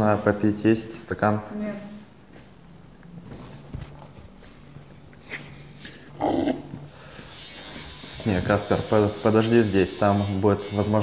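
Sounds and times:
tattoo machine buzzing: 7.1 - 11.0.

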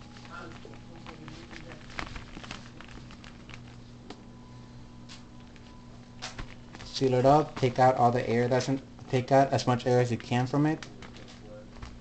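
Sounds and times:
paper towel being handled: 0.0 - 4.0
plastic bag rustling: 0.0 - 4.0
steady low hum: 0.0 - 12.0.

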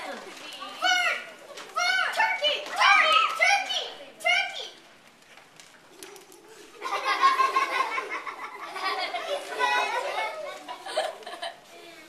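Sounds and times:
children shouting: 0.8 - 4.6, 8.8 - 11.0.

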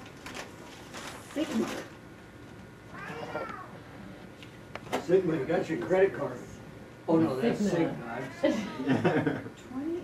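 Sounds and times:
cat meowing: 2.9 - 3.7.

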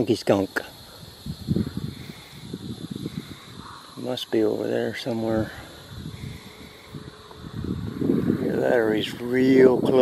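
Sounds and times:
wind buffeting microphone: 0.7 - 10.0.

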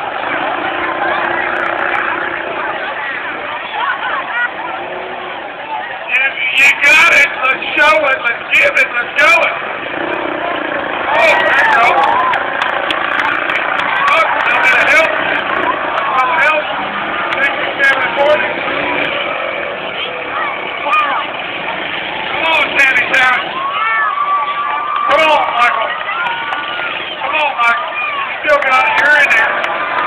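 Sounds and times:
car engines running: 0.0 - 30.0
crowd shouting and cheering: 0.0 - 30.0.

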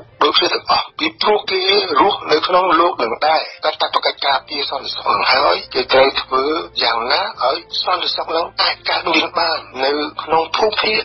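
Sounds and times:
person talking: 0.2 - 11.0.

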